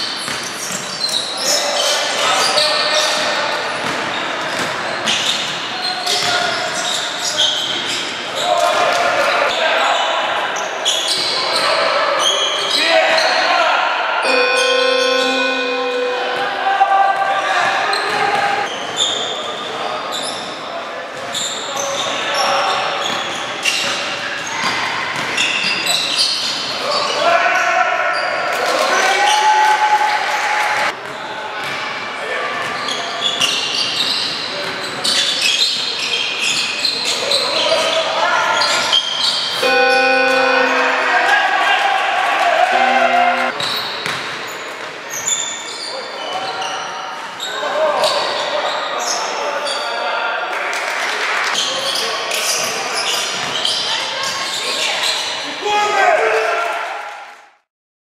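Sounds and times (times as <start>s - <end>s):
voices echoing in gym: 0.0s - 57.4s
players' voices echoing: 12.8s - 18.7s, 39.6s - 43.6s
steady buzzer tone: 14.2s - 16.9s, 39.6s - 41.7s, 42.7s - 43.6s.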